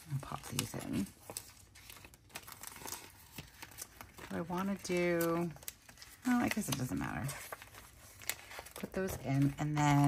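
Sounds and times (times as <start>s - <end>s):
plastic sleeves crinkling: 0.0s - 10.0s.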